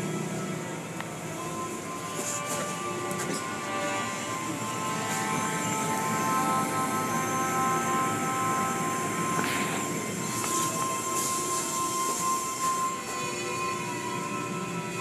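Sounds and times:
car wash machinery running: 0:00.0 - 0:15.0
music playing: 0:00.0 - 0:15.0.

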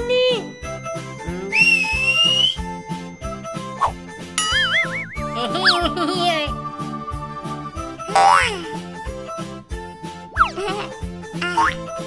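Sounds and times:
cartoon background music: 0:00.0 - 0:12.0
rising whistle sound effect: 0:04.5 - 0:05.3.

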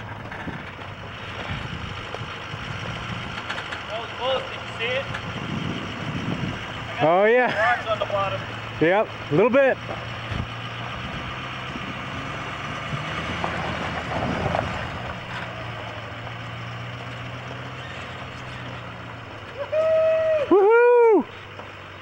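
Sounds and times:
pickup truck engine running: 0:00.0 - 0:22.0.

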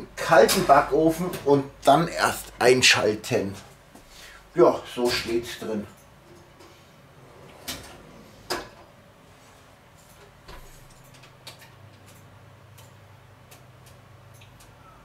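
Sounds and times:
low steady oven hum: 0:00.0 - 0:15.0
oven door shutting: 0:07.2 - 0:08.9.

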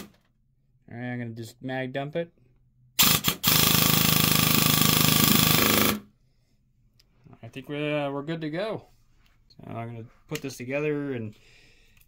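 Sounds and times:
airsoft gun firing full auto: 0:03.0 - 0:06.0.

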